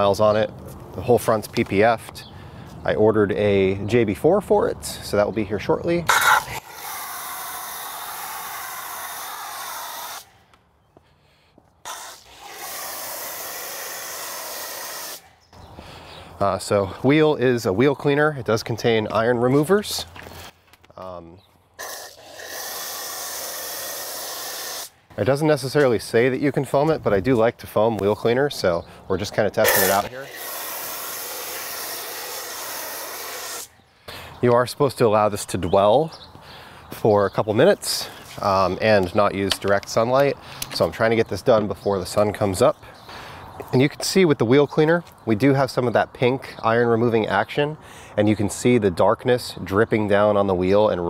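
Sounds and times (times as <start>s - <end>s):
foam cannon spraying hiss: 11.9s - 15.2s, 29.7s - 33.7s.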